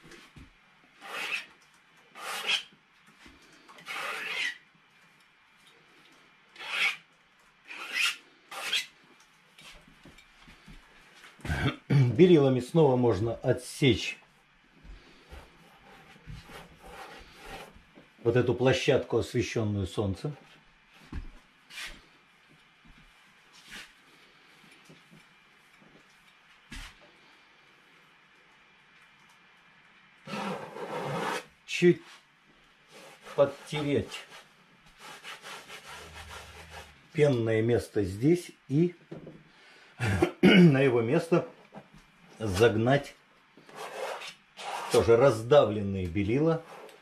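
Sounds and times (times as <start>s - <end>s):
cloth rag rasping on a tool: 1.0s - 1.5s, 2.2s - 2.7s, 3.8s - 4.6s, 6.6s - 7.0s, 7.7s - 8.9s, 30.3s - 31.5s, 32.9s - 37.0s
paintbrush scrubbing canvas: 30.3s - 31.5s, 32.9s - 37.0s
faint scrapes: 32.9s - 37.1s.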